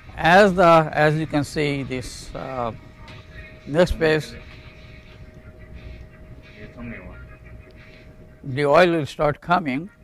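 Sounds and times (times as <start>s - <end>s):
faint steady hum: 0.0s - 10.0s
faint indistinct voices: 0.9s - 8.6s.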